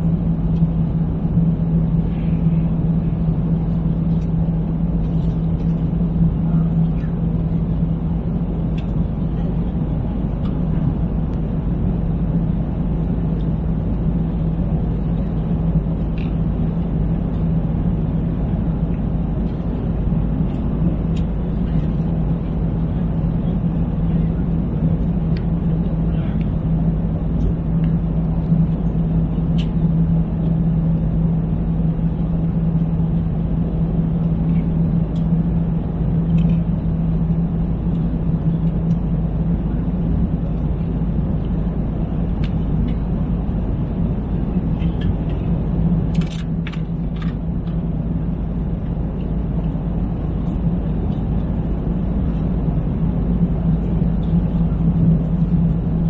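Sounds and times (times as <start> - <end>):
airliner engine and air roar: 0.0 - 56.0
steady cabin hum: 0.0 - 56.0.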